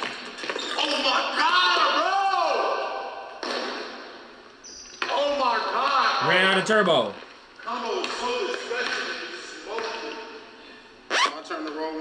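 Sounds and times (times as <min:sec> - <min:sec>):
men talking: 0:05.1 - 0:10.5.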